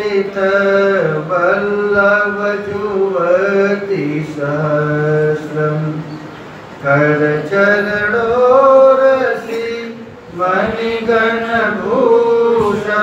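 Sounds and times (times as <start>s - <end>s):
man chanting: 0.0s - 6.1s, 6.8s - 13.0s.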